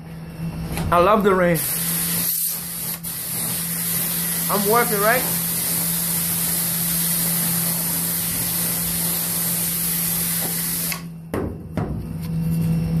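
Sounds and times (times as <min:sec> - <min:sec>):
high-pressure water jet hissing: 0:01.6 - 0:11.1
knocks: 0:11.3 - 0:12.2.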